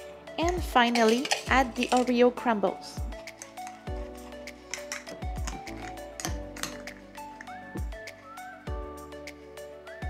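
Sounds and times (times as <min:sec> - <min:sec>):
background music with steady beat: 0:00.0 - 0:10.0
metal spoon clinking glass jar: 0:00.4 - 0:02.2, 0:03.2 - 0:07.6.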